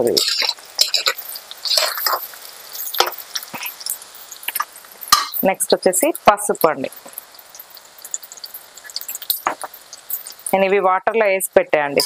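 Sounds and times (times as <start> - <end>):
spatula scraping metal pan: 0.0 - 5.4
onions sizzling in oil: 0.0 - 12.0.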